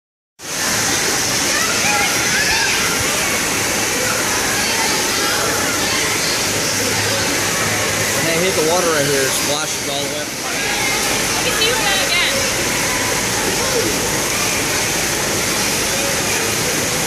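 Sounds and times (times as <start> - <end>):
children's voices: 1.0 - 8.2, 10.4 - 16.8.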